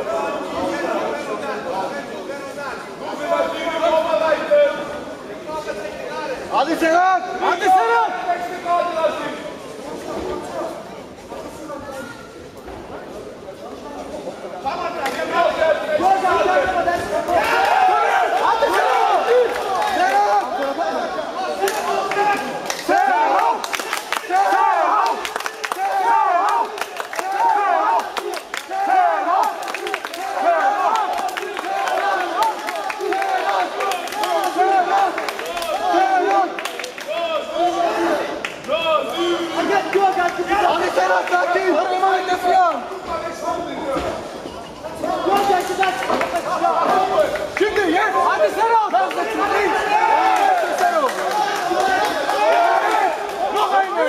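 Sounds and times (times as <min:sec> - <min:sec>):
crowd shouting encouragement: 0:15.1 - 0:43.3, 0:45.0 - 0:54.0.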